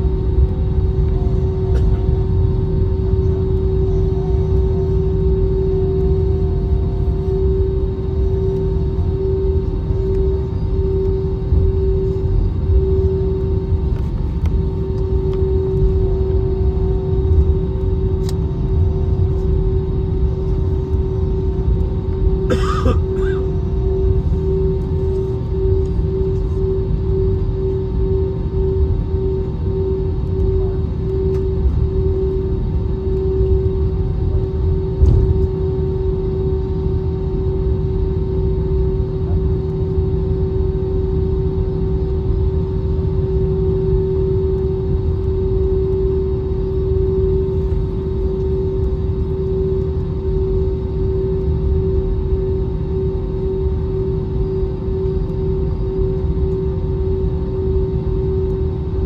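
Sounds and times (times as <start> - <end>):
airliner cabin engine rumble: 0.0 - 59.0.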